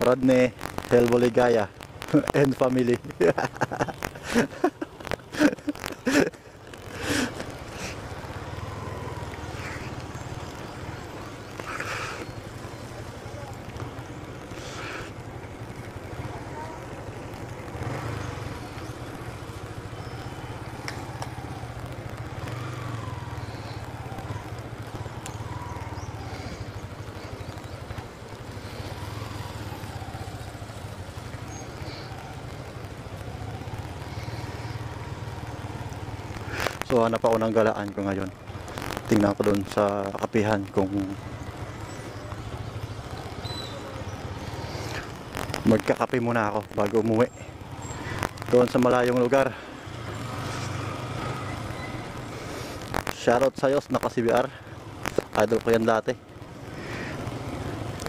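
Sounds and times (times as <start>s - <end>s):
motorcycle engine running low: 0.5s - 37.0s
faint voices: 9.5s - 17.6s.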